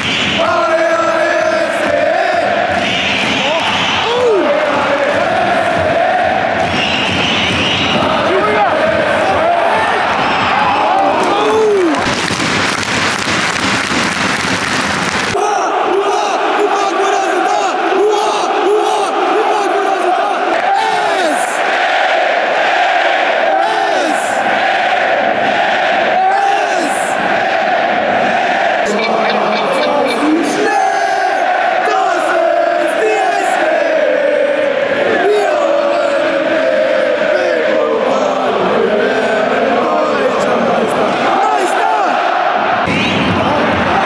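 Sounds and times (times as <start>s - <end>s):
crowd singing a chant: 0.0s - 10.3s, 15.4s - 44.0s
loud crowd roar: 0.0s - 44.0s.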